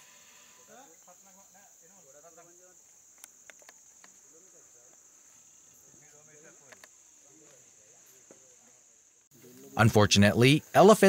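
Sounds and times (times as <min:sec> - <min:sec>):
high-pitched insect chorus: 0:00.0 - 0:11.0.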